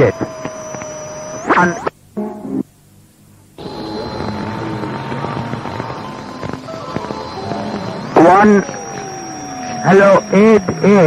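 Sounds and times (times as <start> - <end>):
crackling radio static: 0.0 - 11.0
steady high whistle: 3.6 - 11.0.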